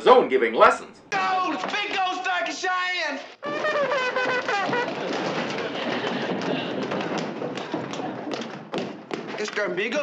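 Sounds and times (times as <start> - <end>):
hurried footsteps on wooden floor: 1.3 - 2.5, 3.3 - 10.0.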